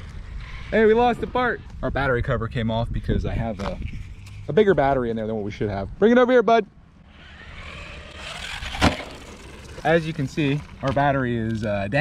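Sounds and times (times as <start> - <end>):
rc truck motor and tyres rushing: 0.0 - 2.2, 3.4 - 4.8, 7.0 - 12.0.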